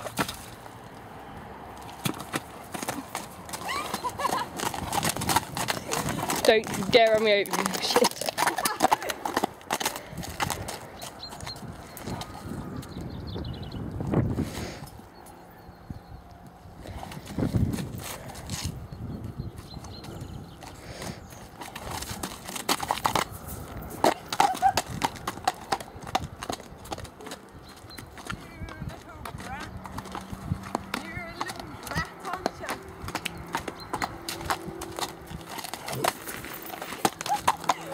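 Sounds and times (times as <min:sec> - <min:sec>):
horse hooves clip-clopping on dirt: 0:00.0 - 0:01.1, 0:01.7 - 0:13.2, 0:16.9 - 0:37.9
voices: 0:03.6 - 0:04.6, 0:05.8 - 0:09.3, 0:28.3 - 0:33.5, 0:37.2 - 0:37.9.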